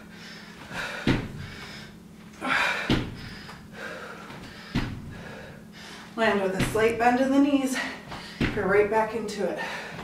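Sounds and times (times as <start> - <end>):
feet thudding on exercise mat: 0.4 - 5.6, 6.2 - 7.2, 7.8 - 9.0.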